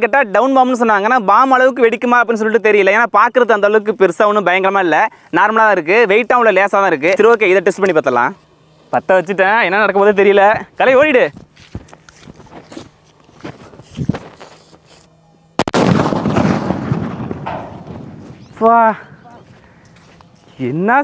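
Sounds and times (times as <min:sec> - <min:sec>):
firecracker blast: 0:15.6 - 0:18.6.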